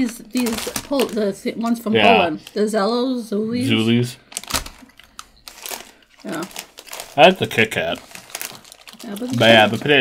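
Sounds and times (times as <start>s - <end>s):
plastic wrapper crinkling: 0.0s - 2.7s, 4.3s - 10.0s.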